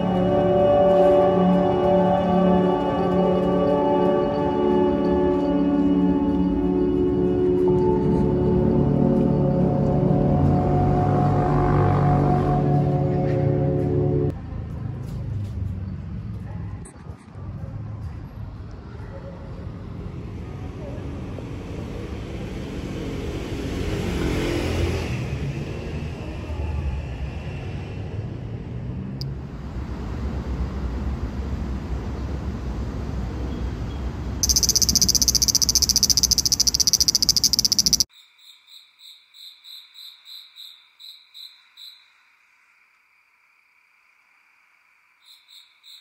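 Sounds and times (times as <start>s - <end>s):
low traffic noise: 29.3s - 38.0s
high pulsing insect buzz: 34.4s - 38.0s
steady high trill: 34.4s - 38.1s
rhythmic insect chirps: 34.4s - 42.1s.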